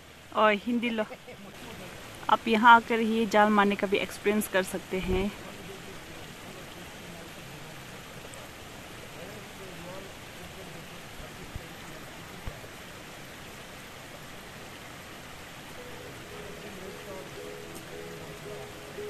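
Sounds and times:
flowing water rushing: 0:00.0 - 0:19.0
faint voices: 0:15.8 - 0:19.0.

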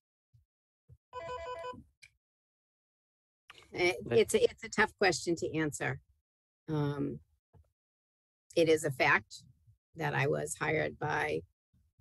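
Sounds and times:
electronic ringing tone: 0:01.2 - 0:01.8.

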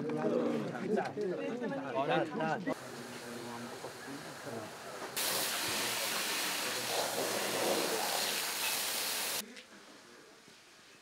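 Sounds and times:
fire hose spraying water: 0:02.8 - 0:09.4.

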